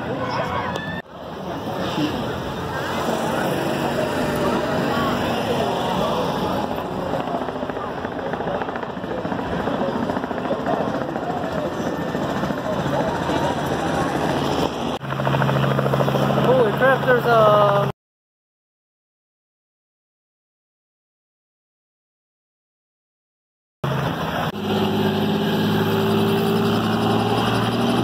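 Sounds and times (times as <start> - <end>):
crowd chatter: 0.0 - 15.0
helicopter engine and rotor: 1.0 - 17.9, 23.8 - 28.0.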